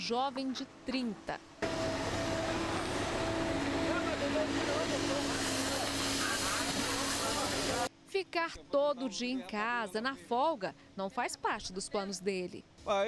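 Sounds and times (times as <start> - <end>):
construction machinery running: 1.1 - 7.9
wide hiss: 5.1 - 7.9.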